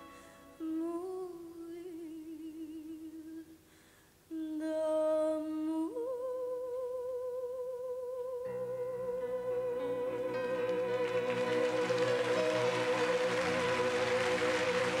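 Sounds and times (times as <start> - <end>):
woman singing wordless melody: 0.0 - 3.7, 4.3 - 15.0.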